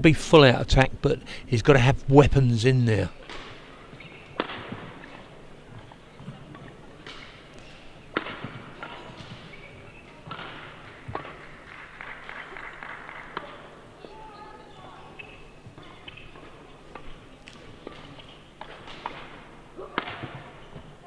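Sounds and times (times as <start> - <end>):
shoes squeaking on court floor: 3.2 - 11.5, 14.0 - 21.0
racket striking shuttlecock: 3.2 - 11.6, 15.2 - 21.0.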